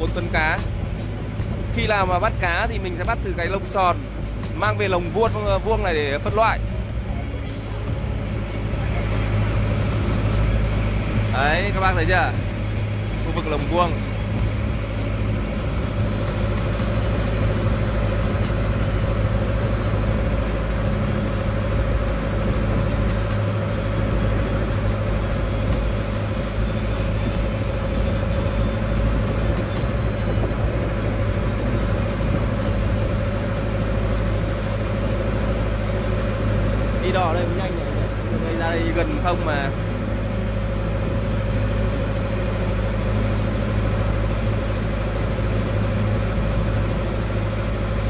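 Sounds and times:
boat engine droning: 0:00.0 - 0:48.0.

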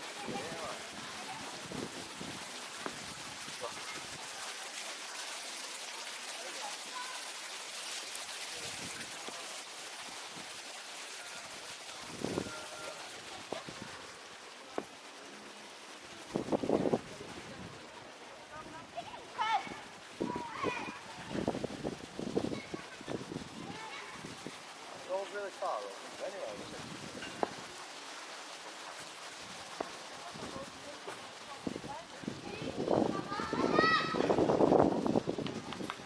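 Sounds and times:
steady background hiss: 0:00.0 - 0:36.0.

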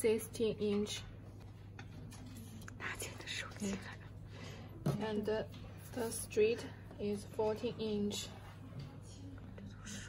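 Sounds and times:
low electrical hum: 0:00.0 - 0:10.0
woman whispering: 0:02.6 - 0:04.2, 0:08.2 - 0:10.0.

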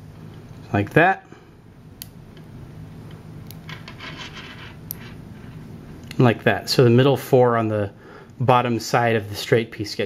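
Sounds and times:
magnets scratchy rubbing: 0:03.6 - 0:05.7.

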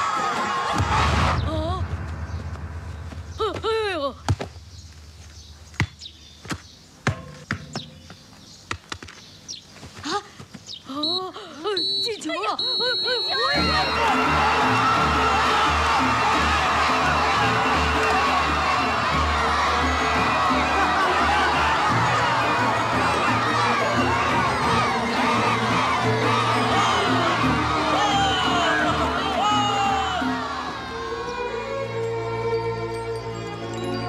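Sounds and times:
crowd cheering and shouting: 0:00.0 - 0:02.7, 0:13.2 - 0:32.4
referee's whistle blasts: 0:11.8 - 0:14.2
film music: 0:13.4 - 0:34.0.

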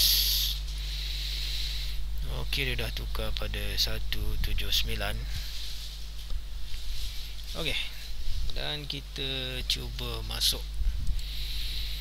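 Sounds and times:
breathy hiss: 0:00.0 - 0:02.1, 0:11.2 - 0:12.0
low electrical hum: 0:00.0 - 0:12.0.

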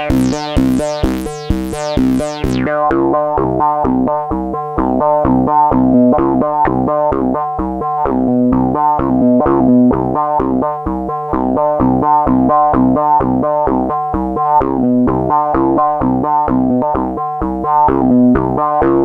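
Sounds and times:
synthesizer repeating pattern: 0:00.0 - 0:03.0
low synthesizer part: 0:00.0 - 0:03.9.

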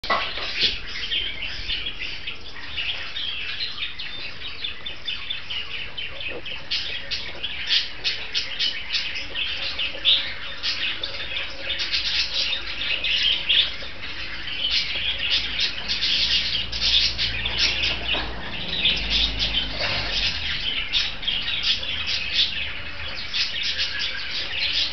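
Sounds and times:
parakeets chattering: 0:00.0 - 0:24.9.

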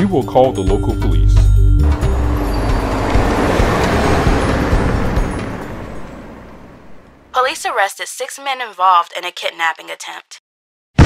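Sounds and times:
low background music: 0:00.0 - 0:06.4
vehicles driving past: 0:01.8 - 0:07.4.

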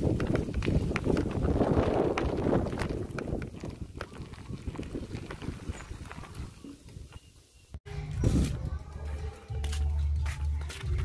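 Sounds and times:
bicycle rattling on dirt road: 0:00.0 - 0:07.4.

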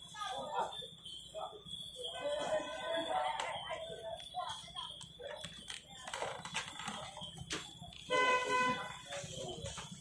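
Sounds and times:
faint background activity: 0:00.0 - 0:10.0
horn honking: 0:08.1 - 0:09.0.

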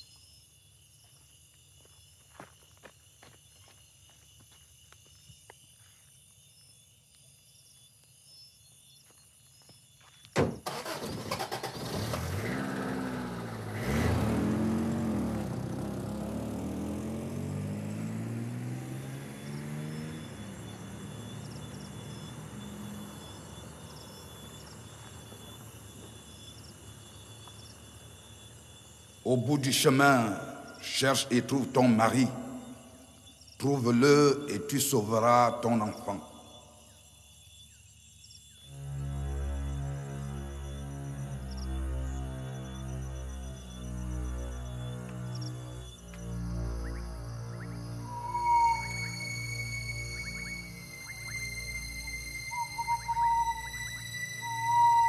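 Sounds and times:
insect chirring: 0:00.0 - 0:11.0, 0:12.6 - 0:55.0
pickup truck engine revving: 0:10.7 - 0:24.2.

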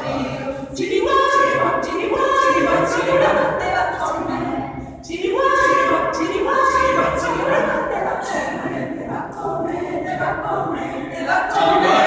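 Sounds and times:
mixed choir singing a cappella: 0:00.0 - 0:12.0.

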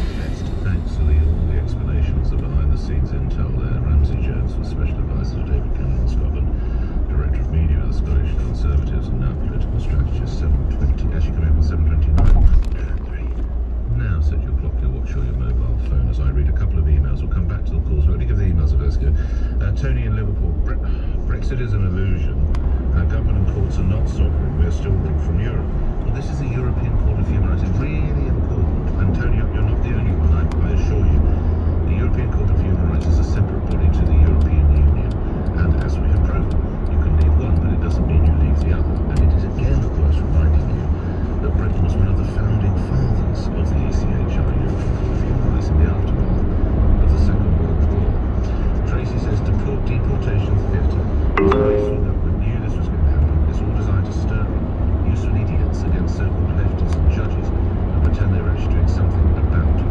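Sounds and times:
tyre and road rumble: 0:11.8 - 0:14.1.

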